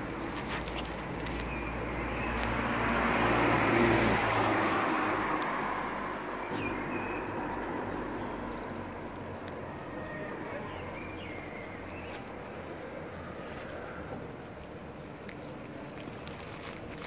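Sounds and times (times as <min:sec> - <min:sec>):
vehicle passing: 0:00.0 - 0:14.5.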